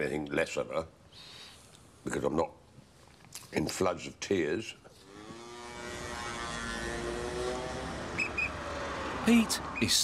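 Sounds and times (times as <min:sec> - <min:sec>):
vehicle engine passing by: 0:05.1 - 0:09.9.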